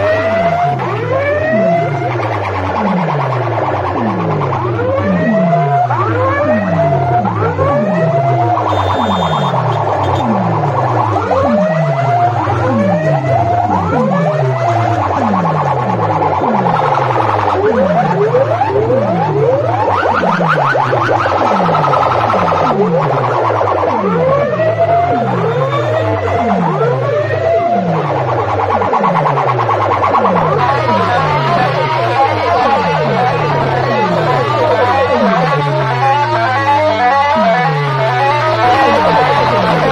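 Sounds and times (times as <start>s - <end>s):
deep bass drone: 0.0s - 39.9s
electronic siren-like dance track: 0.0s - 39.9s.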